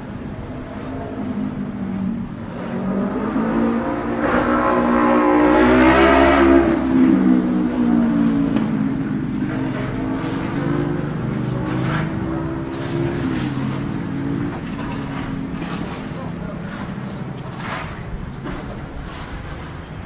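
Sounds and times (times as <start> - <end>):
hum of traffic engines: 0.0 - 20.0
vehicle engine passing by: 0.1 - 20.0.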